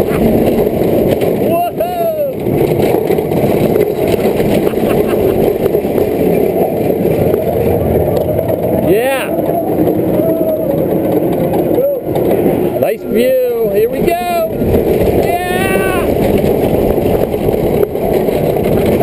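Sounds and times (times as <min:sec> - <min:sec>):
roller coaster lift hill rumble: 0:00.0 - 0:19.0.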